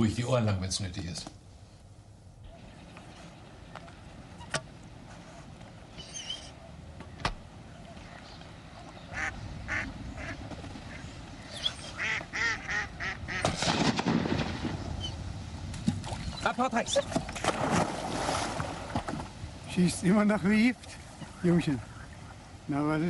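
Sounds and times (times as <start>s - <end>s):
ducks quacking: 8.0s - 13.6s, 21.0s - 22.6s.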